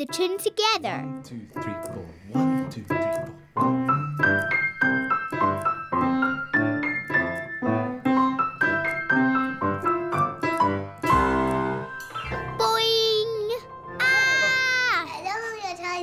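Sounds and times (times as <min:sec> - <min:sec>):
piano duet: 0:00.0 - 0:15.2.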